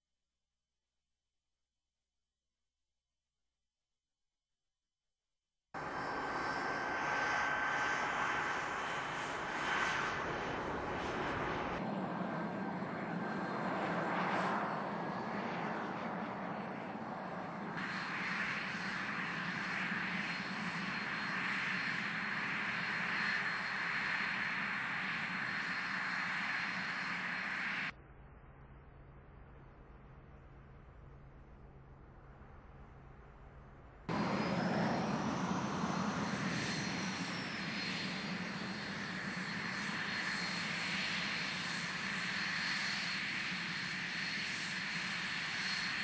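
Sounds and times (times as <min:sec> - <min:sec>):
jet engines running with whine: 0:05.8 - 0:46.0.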